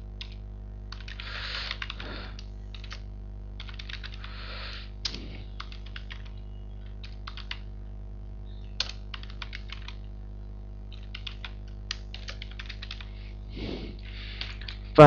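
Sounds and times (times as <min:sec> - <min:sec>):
low electrical hum: 0:00.0 - 0:15.0
computer keyboard typing: 0:00.2 - 0:04.3, 0:05.0 - 0:07.7, 0:08.8 - 0:10.1, 0:10.9 - 0:13.1, 0:14.3 - 0:14.9.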